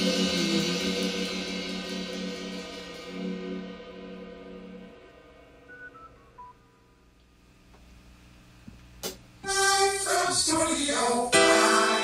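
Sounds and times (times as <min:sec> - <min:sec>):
low room hum: 0:02.7 - 0:11.4.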